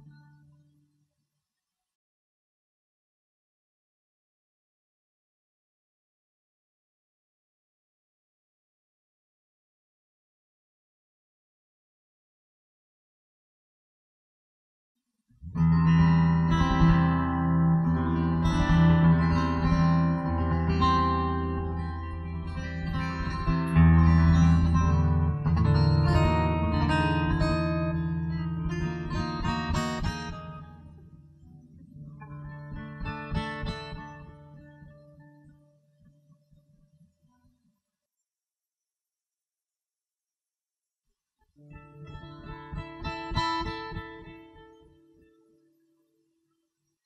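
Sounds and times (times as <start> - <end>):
plucked guitar music: 15.4 - 36.9, 41.6 - 45.8.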